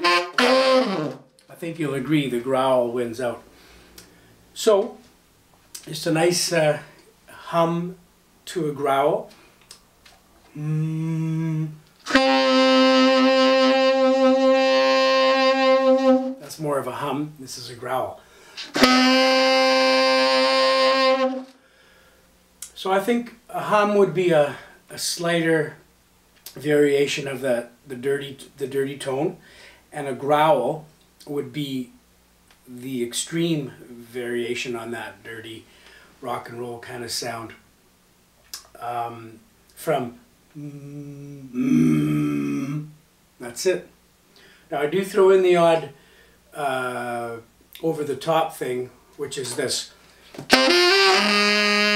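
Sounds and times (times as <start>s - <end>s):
tenor saxophone long note with hum: 0.0s - 1.3s, 10.5s - 16.4s, 18.7s - 21.6s, 50.5s - 51.9s
raspy throat growl: 10.5s - 11.7s, 40.6s - 42.9s
man humming low note: 10.5s - 16.1s, 40.6s - 42.9s.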